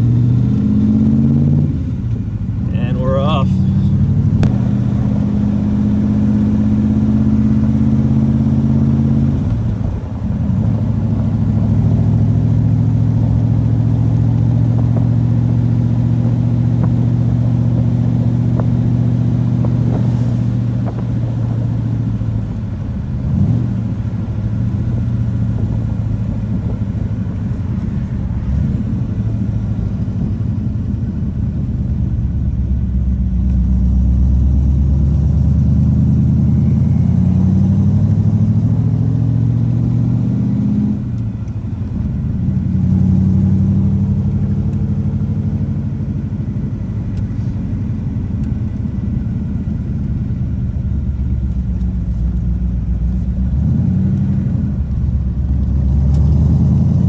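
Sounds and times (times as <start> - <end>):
car engine running while cruising: 0.0 - 57.0
person speaking: 2.7 - 4.0.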